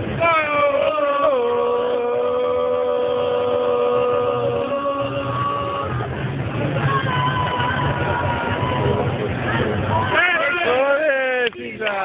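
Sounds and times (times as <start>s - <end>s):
crowd noise: 0.0s - 12.0s
long held vocal ohh: 0.1s - 6.1s.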